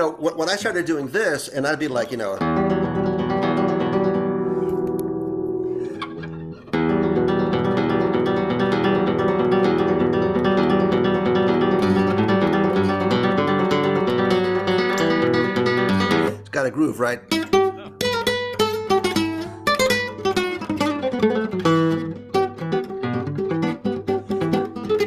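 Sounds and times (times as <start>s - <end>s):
fingerstyle classical guitar: 2.4s - 16.4s, 17.2s - 25.0s.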